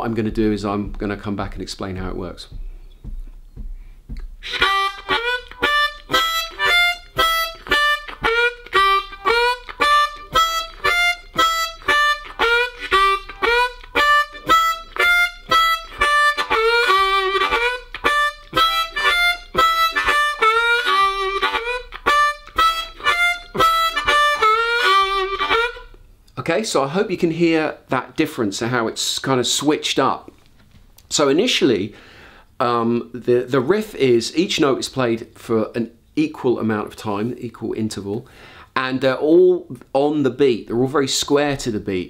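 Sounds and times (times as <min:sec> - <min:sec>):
harmonica blues riff: 0:00.0 - 0:26.0.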